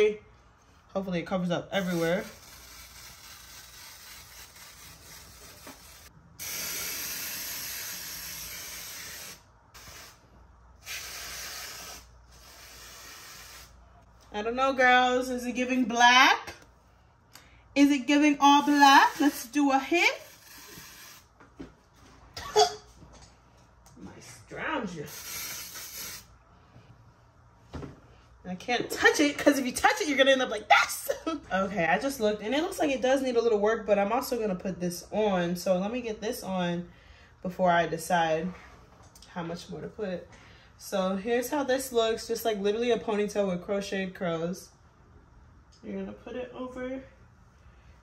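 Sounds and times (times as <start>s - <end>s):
aerosol spray hissing: 4.8s - 10.2s, 10.8s - 13.8s, 20.2s - 21.2s, 25.1s - 26.3s.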